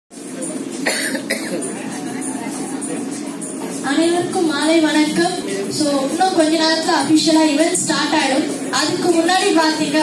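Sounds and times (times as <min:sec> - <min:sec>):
person coughing: 0:00.8 - 0:01.7.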